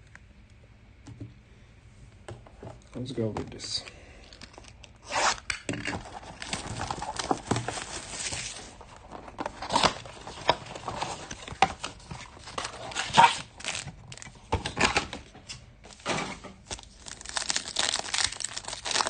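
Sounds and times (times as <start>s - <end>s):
cardboard box being torn open: 9.5s - 11.4s, 17.1s - 19.0s.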